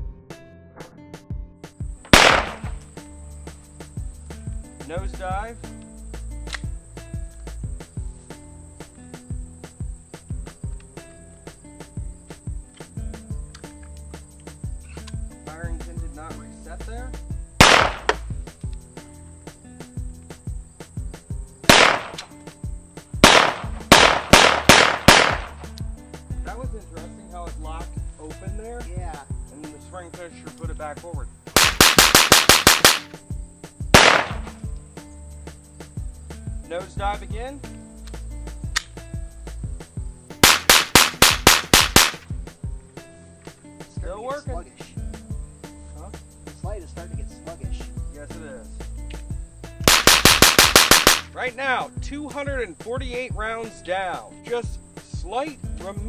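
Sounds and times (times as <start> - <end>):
pistol shots: 2.1 - 2.8, 17.6 - 18.2, 21.7 - 22.3, 23.2 - 25.6, 31.6 - 33.1, 34.0 - 34.6, 40.4 - 42.2, 49.8 - 51.3
rapid gunfire cracks: 2.1 - 2.8, 17.6 - 18.2, 21.6 - 22.3, 23.2 - 25.6, 31.6 - 33.1, 34.0 - 34.6, 40.4 - 42.2, 49.8 - 51.3.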